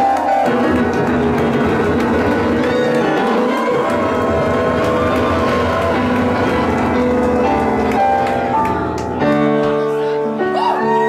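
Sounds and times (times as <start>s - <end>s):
keyboard playing chords and melody: 0.0s - 11.0s.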